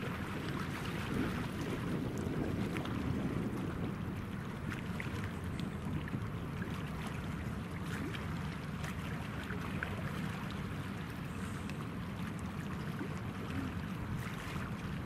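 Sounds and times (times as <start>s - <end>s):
water noise: 0.0s - 15.0s
wind: 0.0s - 15.0s.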